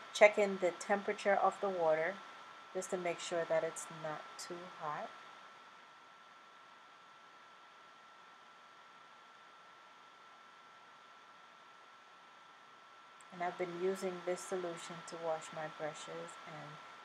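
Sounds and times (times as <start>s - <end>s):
faint steady hiss: 0.0s - 17.0s
thin steady whine: 0.0s - 17.0s.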